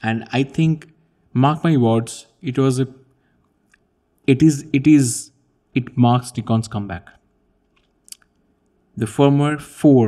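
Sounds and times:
faint mouth click: 0:07.8 - 0:08.4.

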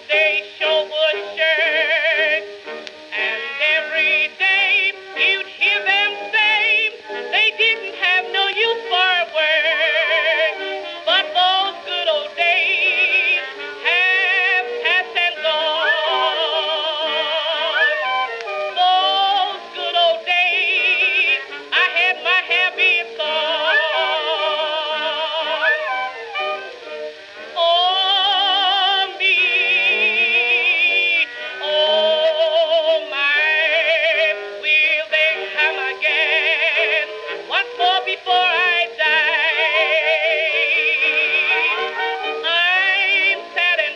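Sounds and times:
old blues record with contralto singer: 0:00.0 - 0:43.9
orchestra playing: 0:40.9 - 0:42.8.

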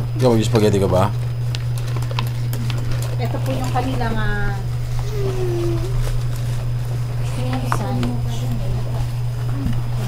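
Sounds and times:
low background hum: 0:00.0 - 0:10.0
murmured vocal hum: 0:04.3 - 0:06.3.

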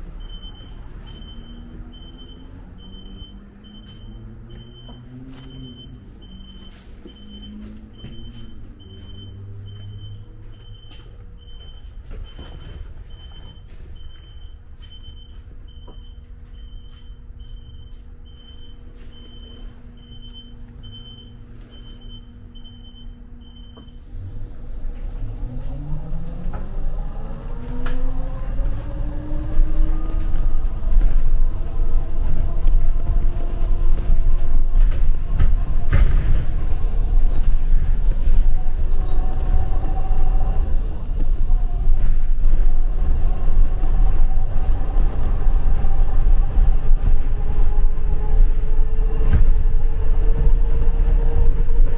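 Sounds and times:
bus accelerating: 0:00.0 - 0:51.9
road rumble: 0:00.0 - 0:51.9.

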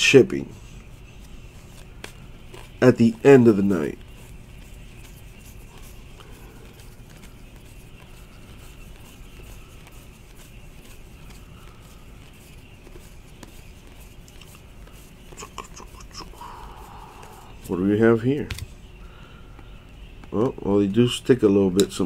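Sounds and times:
steady hum: 0:00.0 - 0:22.0
trading cards rustling: 0:00.5 - 0:22.0.

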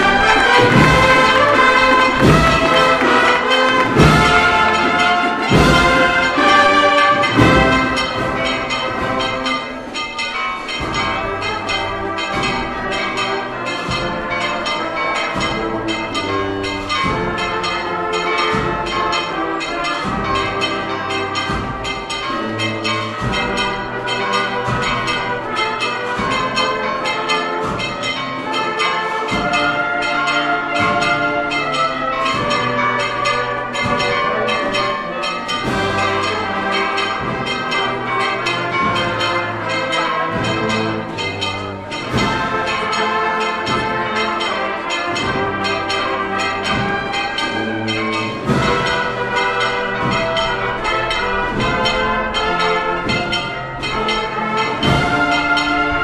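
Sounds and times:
deep drum beat: 0:00.0 - 0:09.9, 0:45.1 - 0:56.0
band playing a march: 0:00.0 - 0:56.0
bells ringing rapidly: 0:00.0 - 0:56.0
percussion strokes: 0:00.0 - 0:56.0
sustained brass notes: 0:00.0 - 0:56.0.

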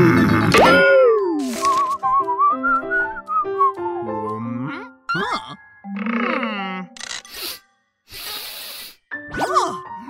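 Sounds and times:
cartoon scraping hiss: 0:07.2 - 0:09.0.

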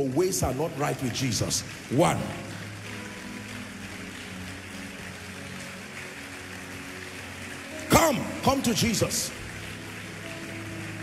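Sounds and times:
crowd noise in a hall: 0:00.0 - 0:11.0.

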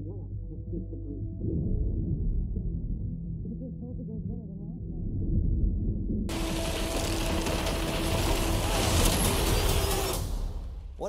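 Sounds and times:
wood crashing and splintering: 0:06.3 - 0:10.7.

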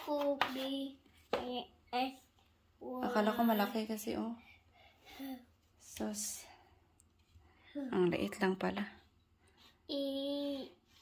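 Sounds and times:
woman speaking: 0:03.0 - 0:04.4, 0:07.9 - 0:09.0.

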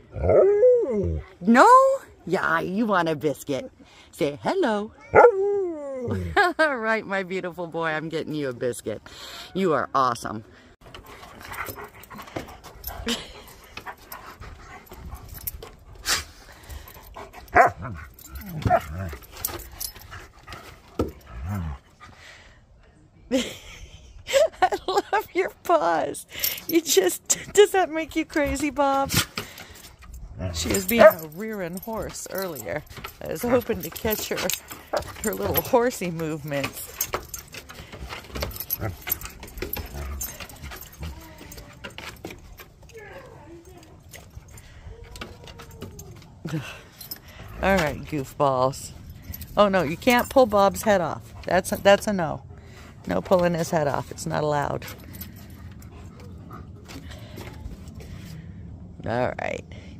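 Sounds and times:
collar tags jingling: 0:06.1 - 0:22.3, 0:23.4 - 0:58.5.

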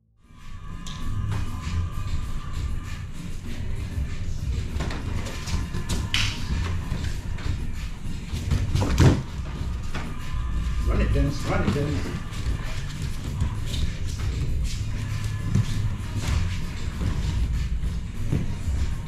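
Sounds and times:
music: 0:00.0 - 0:19.0
bodies thudding on foam mats: 0:08.3 - 0:10.3, 0:11.5 - 0:19.0.

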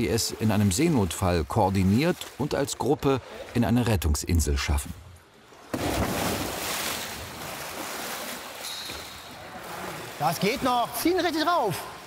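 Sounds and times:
pool water churning and splashing: 0:00.0 - 0:12.0.

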